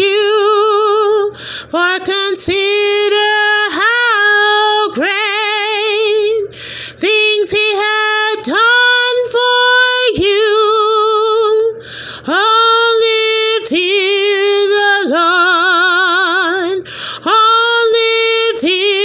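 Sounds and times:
woman singing unaccompanied: 0.0 - 19.0
woman breathing: 1.3 - 1.8, 6.5 - 7.0, 11.8 - 12.3, 16.8 - 17.3.

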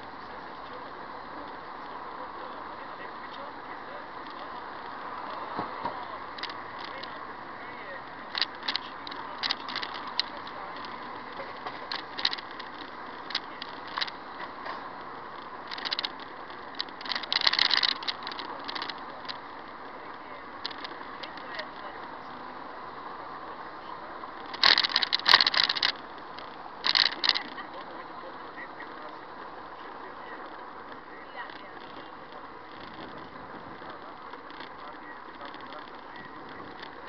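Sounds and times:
short rattles and clicks: 6.3 - 7.2, 8.3 - 19.6, 20.6 - 21.9, 24.4 - 28.0, 30.3 - 37.0.

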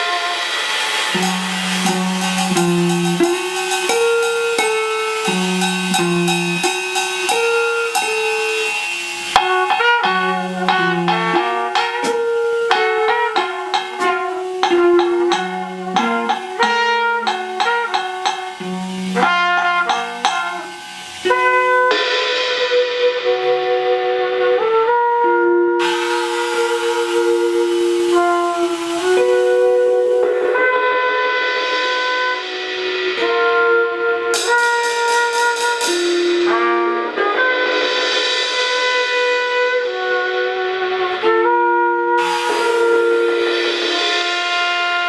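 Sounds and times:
cymbals rolled with mallets: 0.0 - 25.1, 25.8 - 45.0
cornet playing held notes: 0.0 - 45.0.

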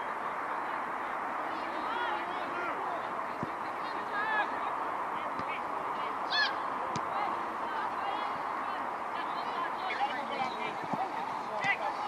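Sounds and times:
outdoor background noise: 0.0 - 12.0
children shouting: 6.3 - 6.6.

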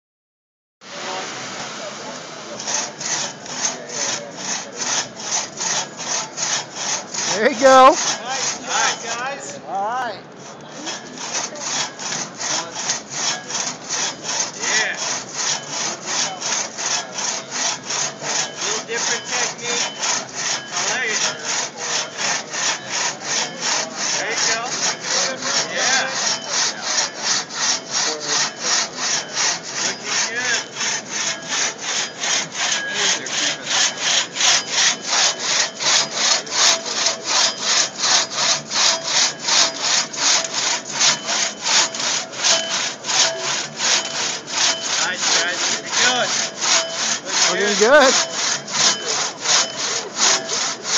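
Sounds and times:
crosscut saw cutting log: 0.9 - 9.6, 10.3 - 50.9.

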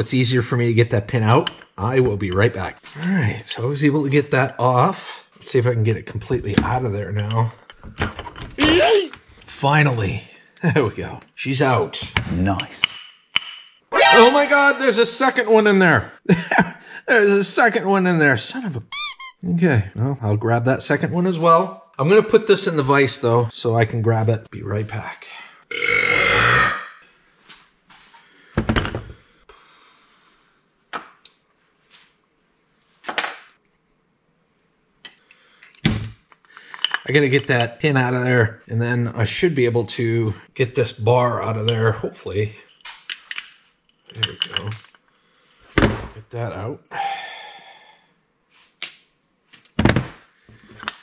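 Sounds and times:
small steel parts clinking on metal: 35.6 - 37.1, 42.7 - 45.1
metal parts knocking on workbench: 44.1 - 45.0.

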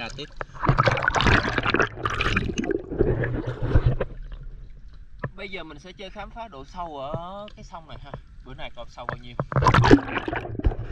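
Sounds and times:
water sloshing and splashing: 0.0 - 5.4, 7.0 - 10.9.

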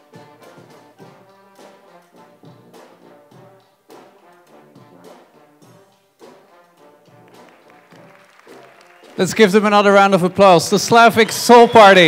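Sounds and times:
trombone and tuba notes: 0.0 - 8.2
brass band playing: 0.0 - 12.0.

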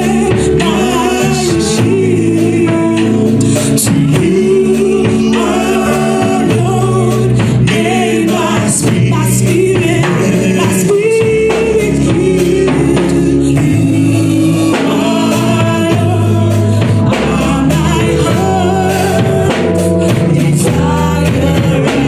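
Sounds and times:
man and woman singing duet: 0.0 - 22.0.

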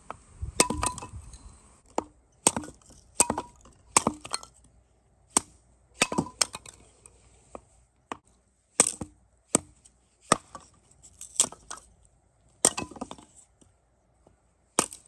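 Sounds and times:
hatchet splitting wood: 1.8 - 4.5, 8.8 - 10.6, 14.8 - 15.0.

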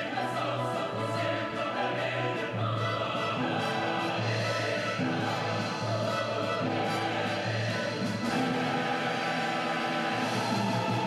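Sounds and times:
orchestral music: 0.0 - 11.0.

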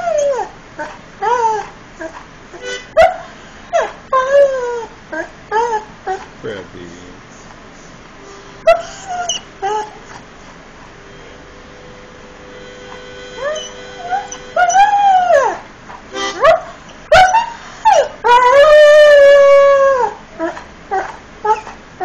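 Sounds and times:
dog howling and whining: 0.0 - 2.2, 2.9 - 6.3, 8.6 - 10.2, 13.4 - 21.8.

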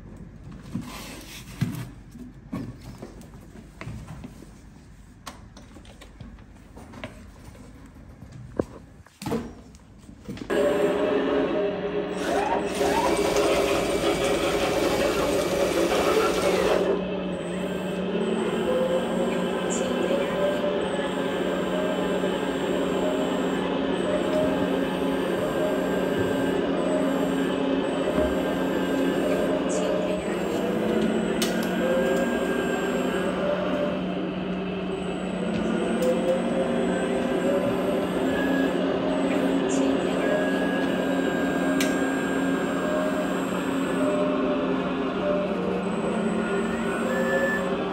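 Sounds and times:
toy bulldozer motors humming: 12.1 - 34.1, 34.8 - 47.9.

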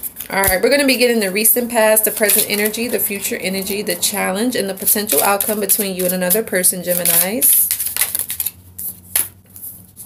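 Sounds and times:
cards being shuffled: 0.0 - 3.8, 4.8 - 10.0.

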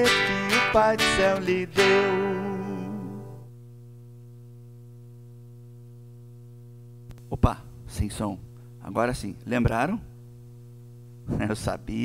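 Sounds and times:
children's song with guitar: 0.0 - 3.5
buzzy electrical hum: 0.0 - 12.0.

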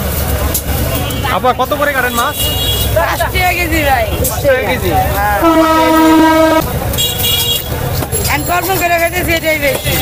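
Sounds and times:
busy street noise: 0.0 - 10.0
vehicle horn held note: 5.4 - 7.5.

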